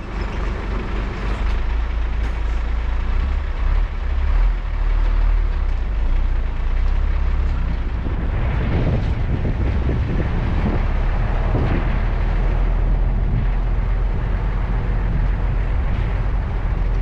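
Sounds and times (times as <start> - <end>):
road noise: 0.0 - 17.0
truck engine rumble: 0.0 - 17.0.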